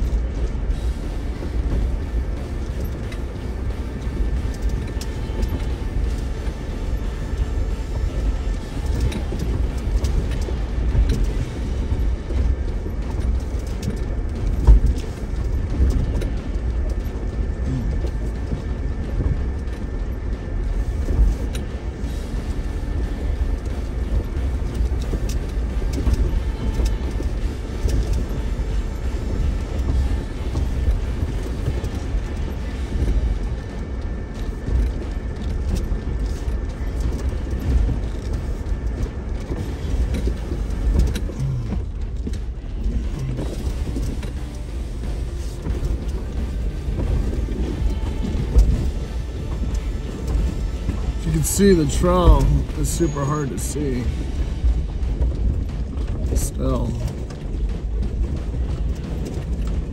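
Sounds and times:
vehicle engine and tyres rumbling: 0:00.0 - 0:59.9.

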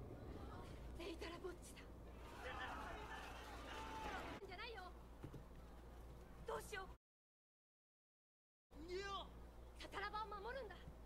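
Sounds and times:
man shouting: 0:02.3 - 0:04.4.

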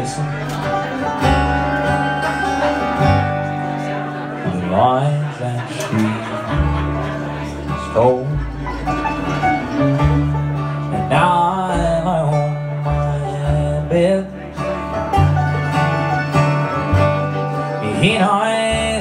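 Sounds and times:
bluegrass band playing: 0:00.0 - 0:19.0
upright bass: 0:00.0 - 0:19.0.

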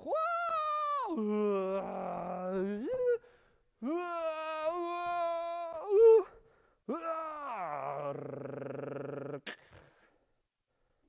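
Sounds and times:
man vocalizing: 0:00.0 - 0:03.2, 0:03.8 - 0:09.9.

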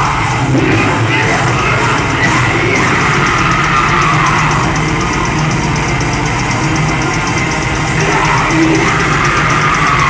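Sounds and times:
drums: 0:00.0 - 0:10.0
heavy distorted guitars: 0:00.0 - 0:10.0
steady cymbal beat: 0:00.0 - 0:10.0.

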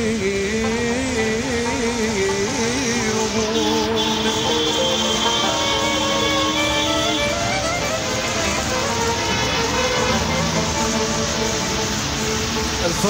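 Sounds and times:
middle eastern style song: 0:00.0 - 0:13.0
street traffic noise: 0:00.0 - 0:13.0.

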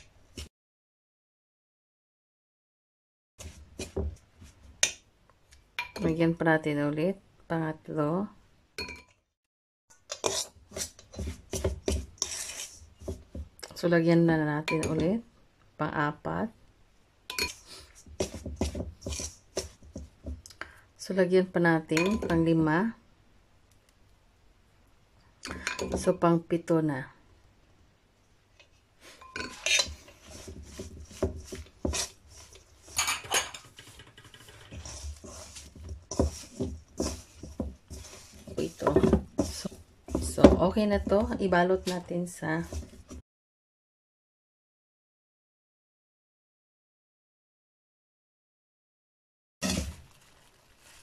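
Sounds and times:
fork scraping dough in metal bowl: 0:10.0 - 0:13.4, 0:17.3 - 0:20.1, 0:28.6 - 0:43.2, 0:49.6 - 0:49.9.

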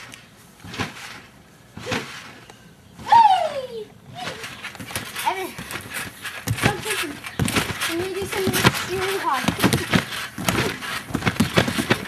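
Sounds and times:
sharp thumps: 0:00.0 - 0:03.2, 0:04.2 - 0:12.0.

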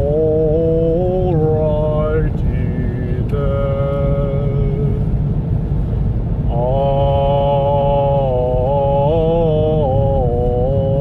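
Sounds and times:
steady low rumble: 0:00.0 - 0:11.0
person singing long held notes: 0:06.5 - 0:11.0.

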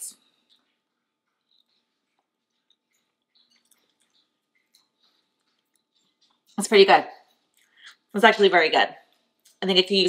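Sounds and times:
chewing food clicks: 0:00.2 - 0:08.1, 0:09.0 - 0:09.6.

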